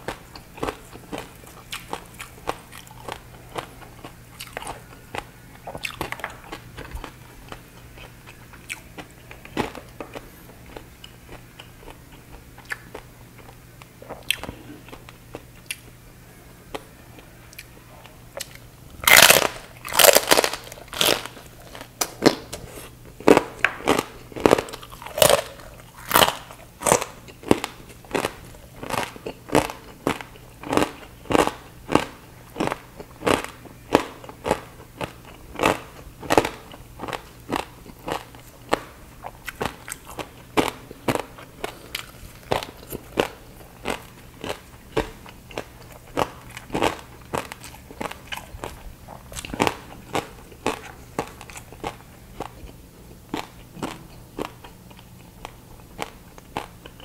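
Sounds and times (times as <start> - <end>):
crispy food crunching: 0.0 - 16.0, 16.6 - 57.0.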